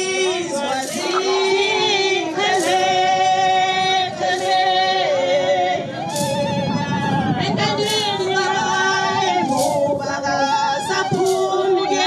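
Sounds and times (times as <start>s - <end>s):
women singing: 0.0s - 12.0s.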